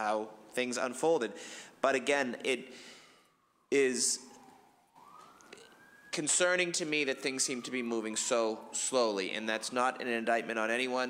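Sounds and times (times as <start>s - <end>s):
faint siren wailing: 2.4s - 11.0s.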